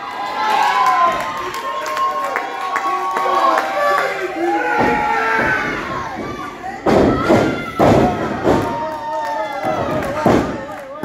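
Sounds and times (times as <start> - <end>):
crowd voices: 0.0 - 11.0.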